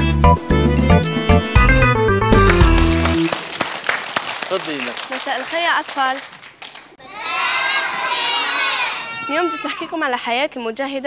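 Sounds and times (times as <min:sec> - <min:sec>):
children shouting together: 0:07.0 - 0:09.9.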